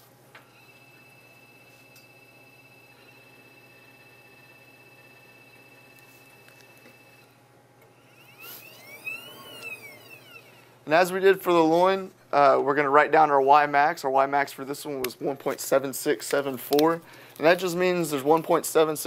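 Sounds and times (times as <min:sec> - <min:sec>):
machine drive whining: 0:00.3 - 0:11.8
faint rising and falling tones: 0:02.4 - 0:11.2.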